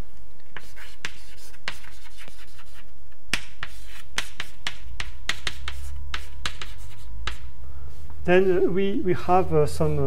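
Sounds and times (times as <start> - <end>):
chalk tapping and scratching: 0.5 - 7.5.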